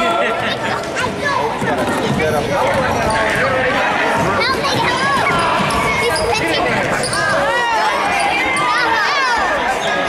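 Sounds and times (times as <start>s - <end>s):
voices of players and spectators: 0.0s - 10.0s
shoes squeaking on hardwood floor: 1.6s - 8.8s.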